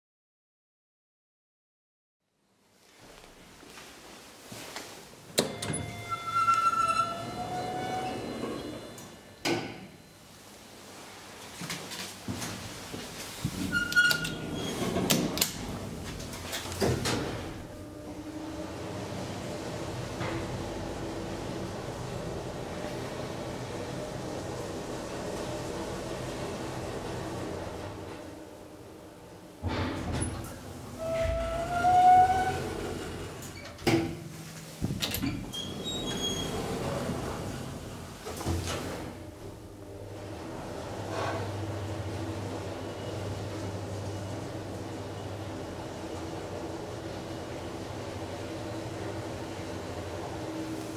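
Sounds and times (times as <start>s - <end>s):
elevator doors clunking: 5.3s - 9.9s, 13.6s - 18.0s
elevator door motor whine: 5.4s - 9.6s, 13.7s - 33.8s, 35.0s - 50.9s.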